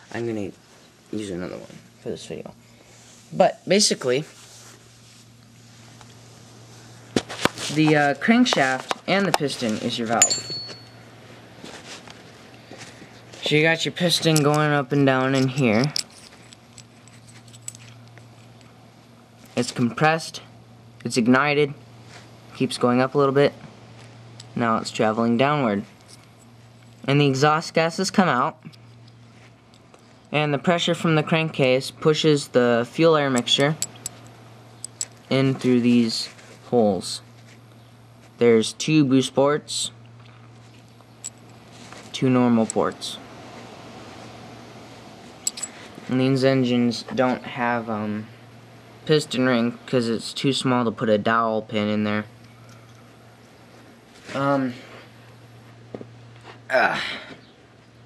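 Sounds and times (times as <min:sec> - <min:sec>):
steady low hum: 0:00.0 - 0:58.0
light metal clicks: 0:45.4 - 0:45.7.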